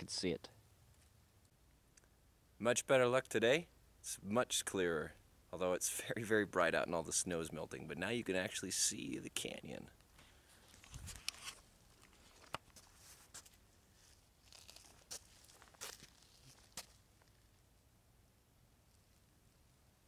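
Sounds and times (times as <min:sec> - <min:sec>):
faint clicks and crunches: 0:10.0 - 0:17.6.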